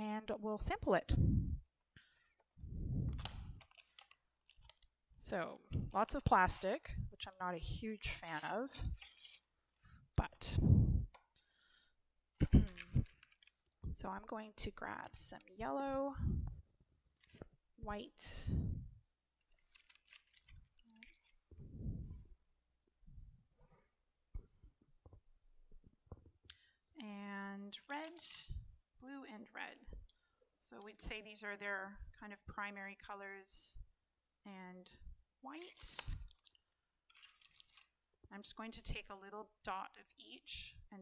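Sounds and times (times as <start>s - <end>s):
plastic rustling and scraping: 3.0s - 4.9s, 8.1s - 10.0s, 12.4s - 14.0s, 17.1s - 17.6s, 19.4s - 21.7s, 35.7s - 38.0s
plastic packaging crackling: 3.0s - 5.0s, 12.5s - 13.9s, 19.4s - 21.5s, 35.7s - 38.0s
plastic packaging click: 3.1s - 4.9s.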